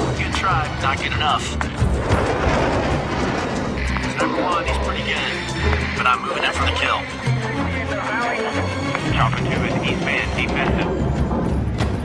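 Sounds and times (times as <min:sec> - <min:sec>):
fighter jet roar: 0:00.0 - 0:07.9, 0:09.0 - 0:12.0
music: 0:00.0 - 0:12.0.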